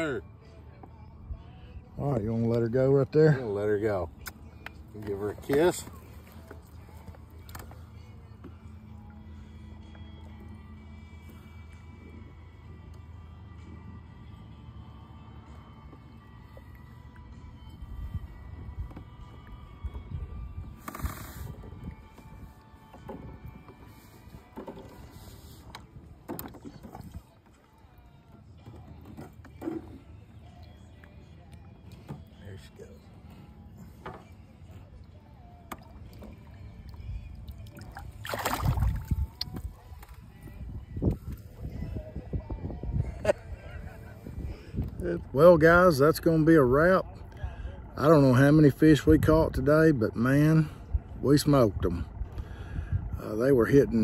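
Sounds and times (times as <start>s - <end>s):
water lapping at kayak: 4.0s - 32.4s, 33.0s - 41.9s.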